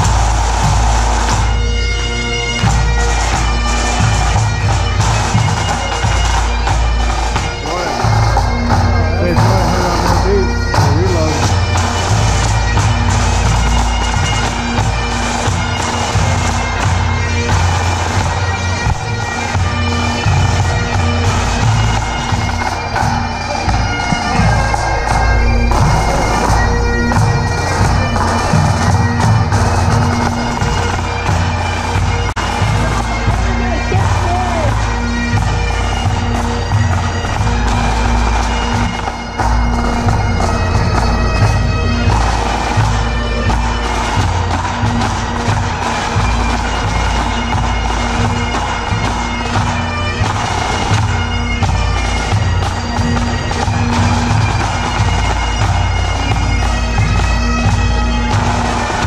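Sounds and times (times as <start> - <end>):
bagpipes playing a tune: 0.0 - 59.0.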